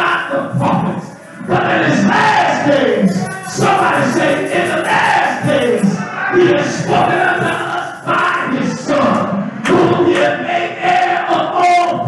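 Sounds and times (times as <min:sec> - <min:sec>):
live praise music: 0:00.0 - 0:12.0.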